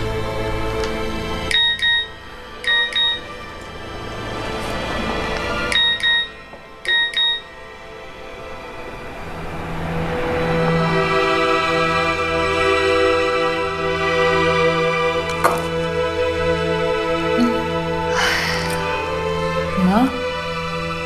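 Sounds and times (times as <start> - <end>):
soft background music: 0.0 - 21.0
phone message alert beeps: 2.7 - 3.2, 6.9 - 7.4.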